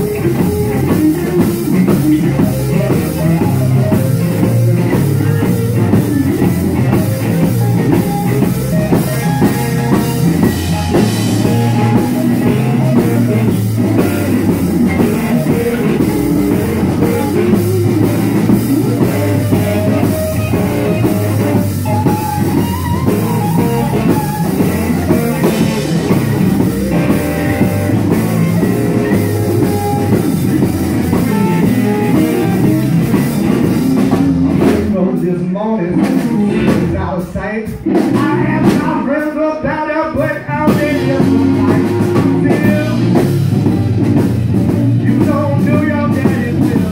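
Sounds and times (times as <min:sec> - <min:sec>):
bass guitar: 0:00.0 - 0:46.9
drum kit: 0:00.0 - 0:46.9
electric guitar: 0:00.0 - 0:46.9.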